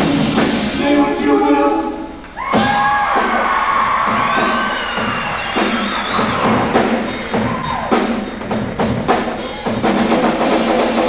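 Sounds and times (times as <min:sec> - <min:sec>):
live rock band: 0:00.0 - 0:01.2, 0:02.2 - 0:11.0
drum hits: 0:02.4 - 0:11.0.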